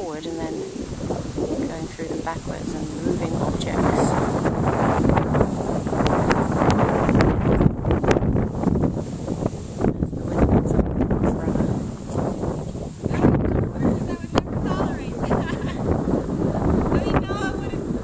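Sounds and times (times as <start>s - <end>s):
wind noise on microphone: 0.0s - 18.0s.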